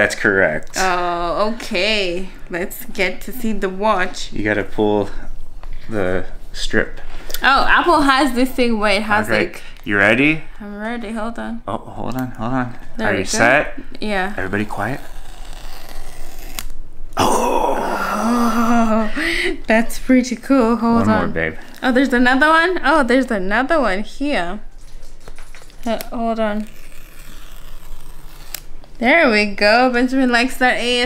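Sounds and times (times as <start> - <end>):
paper strip ripping: 15.0 - 16.8, 25.2 - 28.7.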